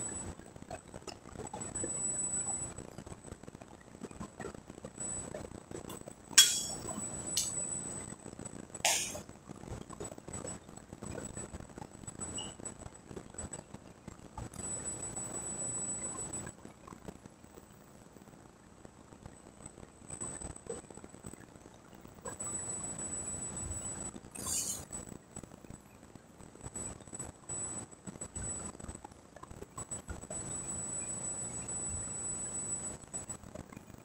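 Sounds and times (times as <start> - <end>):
barbell plates clanking: 6.4 - 7.5.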